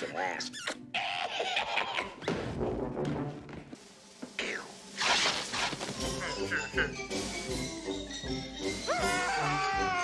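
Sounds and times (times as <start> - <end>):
film soundtrack music: 0.0 - 10.0
man cackling laugh: 1.1 - 2.2.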